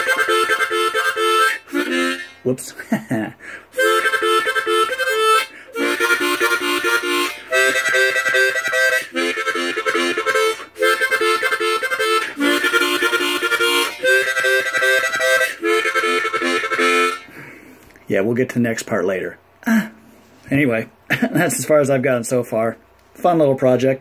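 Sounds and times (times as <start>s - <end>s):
harmonica chordal phrases: 0.0s - 17.7s.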